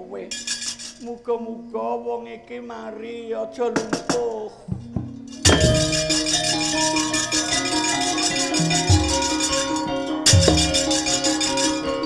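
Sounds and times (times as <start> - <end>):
metallic rattle of plates: 0.3 - 1.0, 4.8 - 12.0
metallophones ringing melody: 4.7 - 12.0.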